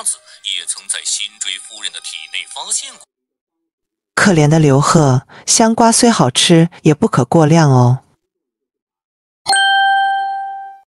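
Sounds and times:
bell-like chime ding: 9.5 - 10.9.

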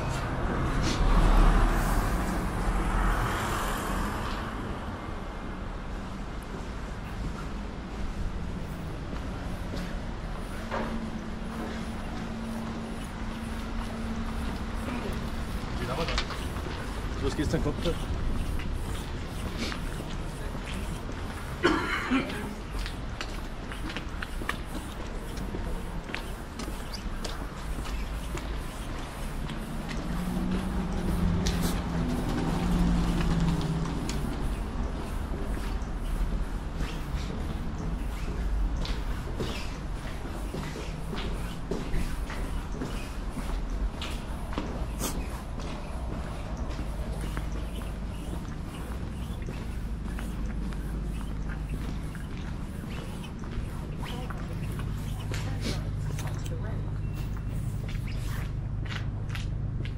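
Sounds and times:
footsteps on pavement: 0.0 - 4.5, 6.2 - 59.9
city traffic rumble: 0.0 - 59.9.

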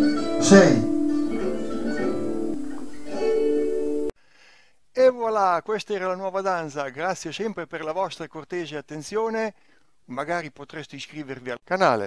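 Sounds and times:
psaltery dance tune: 0.0 - 4.1.

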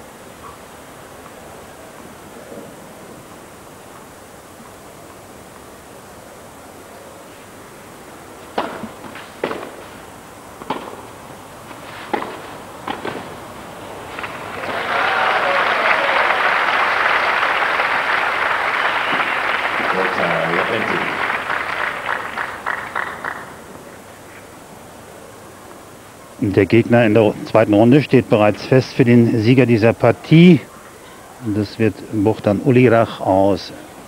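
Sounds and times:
racket striking tennis ball: 8.5 - 10.0, 10.6 - 14.8
crowd applauding: 14.1 - 23.8
crowd shouts: 14.5 - 22.2.

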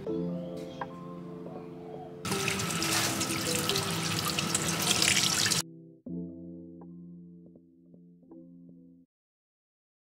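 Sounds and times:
tap water running into sink: 2.3 - 5.6
water splashing over plastic: 2.3 - 5.6.

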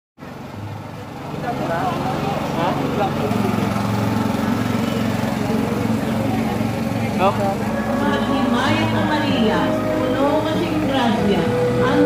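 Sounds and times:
small engine running: 0.2 - 12.0.

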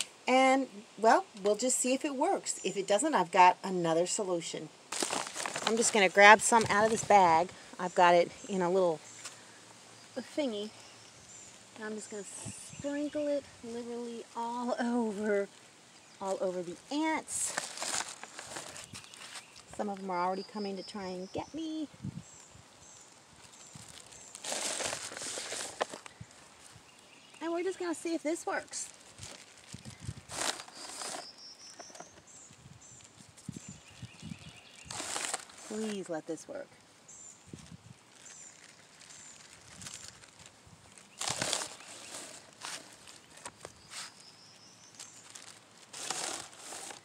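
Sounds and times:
plastic bag crinkling: 4.9 - 7.1, 17.3 - 19.8, 23.0 - 26.3, 27.6 - 32.1, 32.8 - 36.1, 37.5 - 44.2, 45.0 - 47.0
powder sprinkling: 4.9 - 7.2, 14.5 - 20.0, 22.8 - 36.4, 37.5 - 44.2, 44.9 - 47.0.

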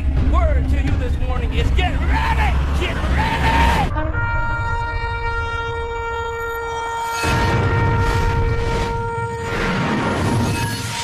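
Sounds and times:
long horn blast: 3.6 - 10.0.

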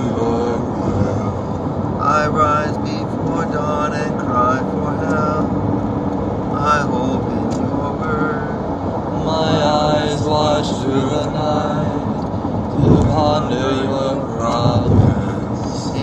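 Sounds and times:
voices chanting psalms: 0.0 - 5.5, 6.5 - 16.0
car road noise rumble: 0.0 - 16.0.

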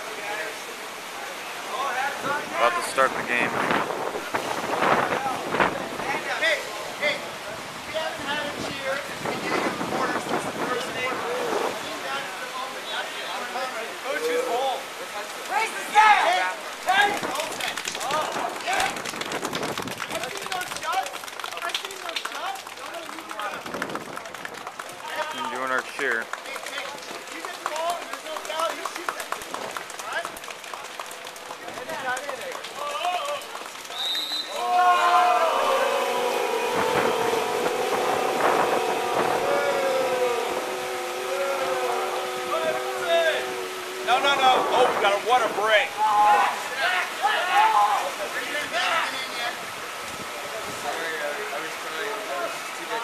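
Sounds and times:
wind on microphone: 2.2 - 6.3, 7.7 - 12.0, 18.0 - 20.2, 35.6 - 45.7
people calling and shouting: 32.7 - 50.0
group of voices chattering: 34.5 - 49.8.

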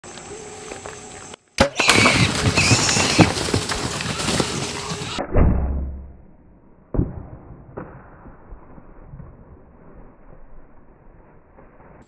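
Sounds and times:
scuffling: 0.1 - 5.2
hog squeal: 1.6 - 3.5
hogs crunching food: 1.8 - 5.2.

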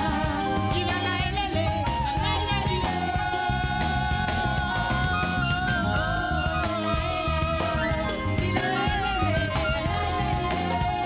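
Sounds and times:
electric guitar lead line: 0.0 - 11.0
live band music: 0.0 - 11.0.

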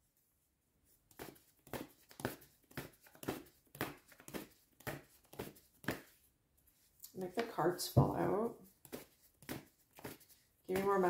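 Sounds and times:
cards being shuffled: 1.1 - 6.2, 8.7 - 11.0.

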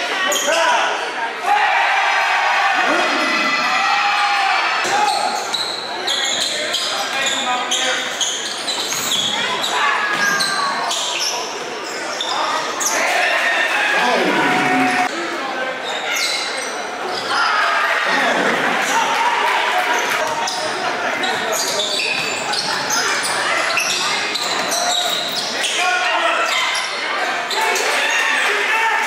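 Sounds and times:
voices echoing in gym: 0.0 - 29.0.

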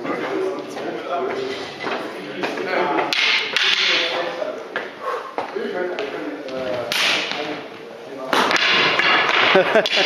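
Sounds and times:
wooden sticks knocking together: 3.0 - 4.2, 6.9 - 7.5, 8.4 - 10.0.

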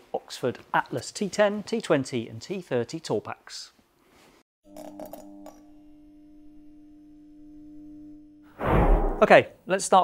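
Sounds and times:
steady humming tone: 4.8 - 8.5.

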